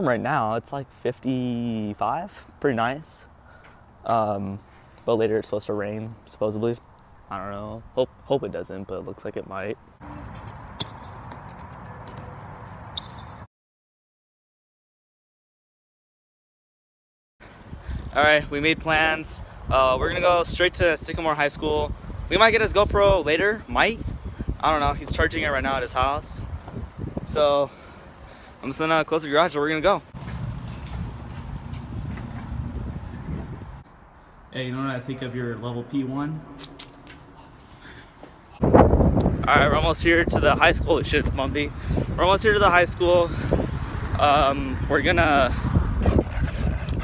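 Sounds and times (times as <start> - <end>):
bike clicks and knocks: 10.3 - 13.4, 30.2 - 33.2.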